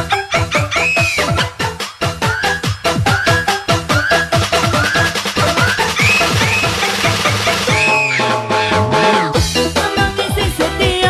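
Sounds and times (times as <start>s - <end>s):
electronic dance music: 0.0s - 11.0s
high synth line sliding up: 3.2s - 9.3s.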